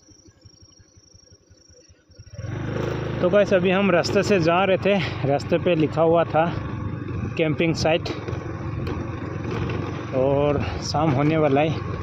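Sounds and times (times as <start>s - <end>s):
scooter engine hum: 0.0s - 12.0s
wind and road noise: 2.2s - 12.0s.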